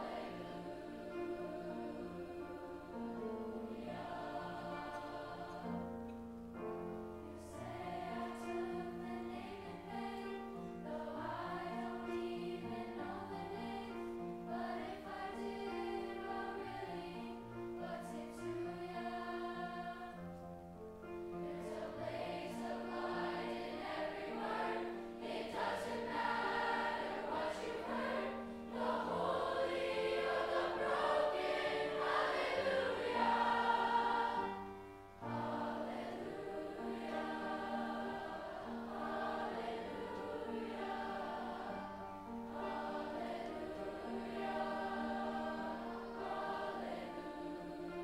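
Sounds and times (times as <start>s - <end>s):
youth choir singing: 0.0s - 6.1s, 7.4s - 20.4s, 21.3s - 48.0s
piano accompaniment: 0.0s - 48.0s.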